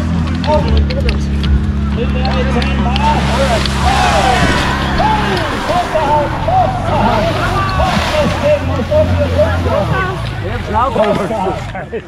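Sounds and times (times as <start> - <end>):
pump engine running: 1.0 - 10.9
water spraying from hose coupling: 2.4 - 11.1
people shouting: 2.7 - 10.2.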